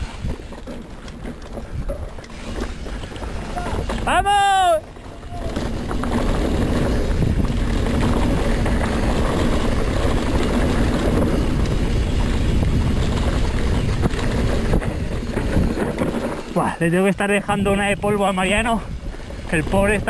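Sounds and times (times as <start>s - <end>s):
bike tyres rumbling on dirt: 0.0s - 20.0s
wind rushing on microphone: 1.4s - 20.0s.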